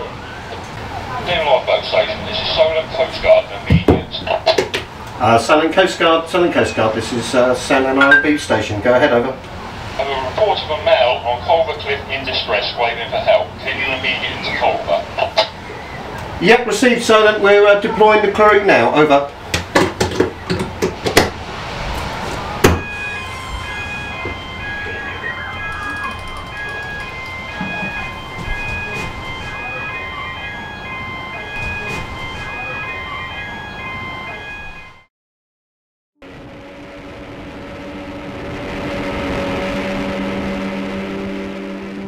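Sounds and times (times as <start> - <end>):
boat outboard engines droning: 0.0 - 34.7, 36.2 - 42.0
electronic alarm beeping: 8.0 - 8.5, 22.6 - 35.1.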